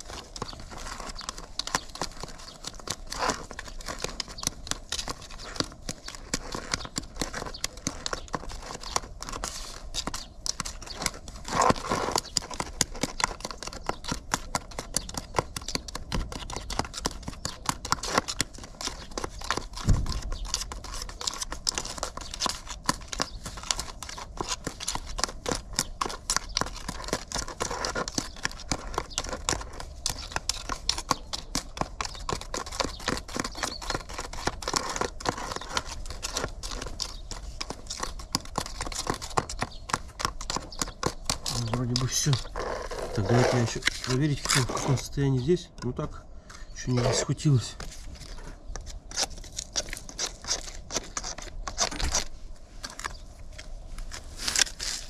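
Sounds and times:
spatula scraping compound: 0.0s - 45.5s, 46.5s - 55.0s.

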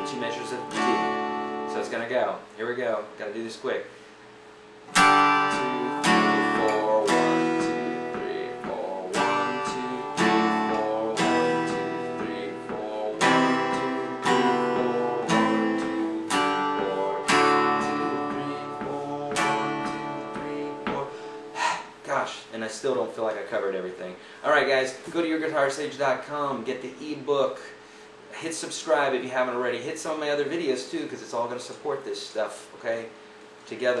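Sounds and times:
acoustic guitar strumming chords: 0.0s - 2.4s, 4.7s - 22.4s.

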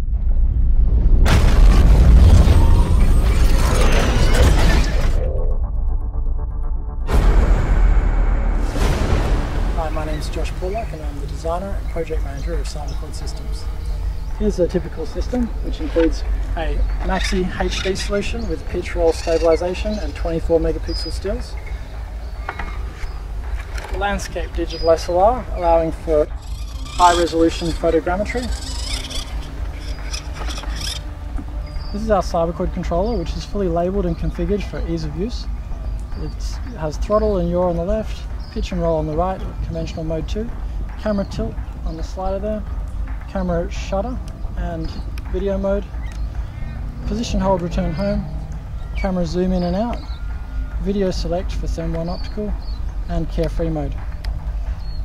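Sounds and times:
rush of noise: 0.0s - 18.9s
deep low rumble: 0.0s - 43.4s.

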